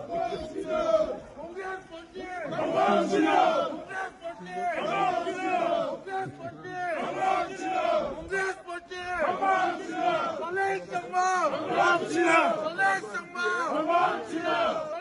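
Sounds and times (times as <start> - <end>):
crowd shouting and cheering: 0.0 - 15.0.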